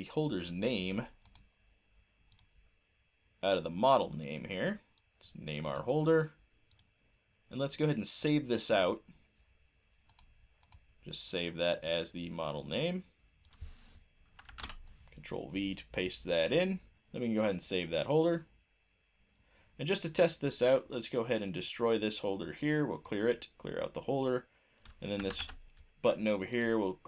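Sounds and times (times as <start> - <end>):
computer mouse clicks: 1.2 - 1.5, 2.3 - 2.5, 6.7 - 6.9, 10.0 - 10.8, 13.4 - 13.7
keyboard keystrokes: 14.4 - 14.8.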